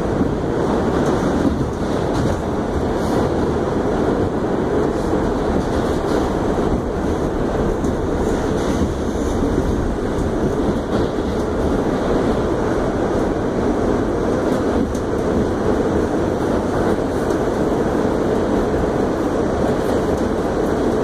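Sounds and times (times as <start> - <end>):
subway train wheels rumbling: 0.0 - 21.0.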